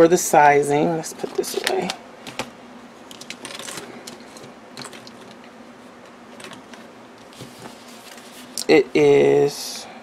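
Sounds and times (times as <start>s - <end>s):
notebooks handled on tabletop: 6.4s - 8.6s.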